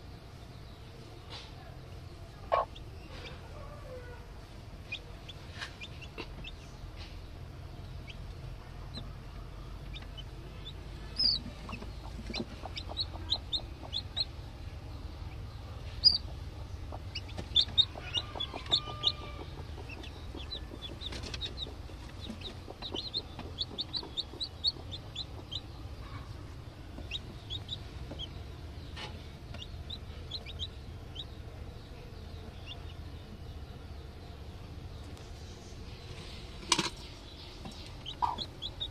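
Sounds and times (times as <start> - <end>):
chicks peeping: 0.1 - 38.9
hen clucking low: 16.0 - 26.4, 38.0 - 38.9.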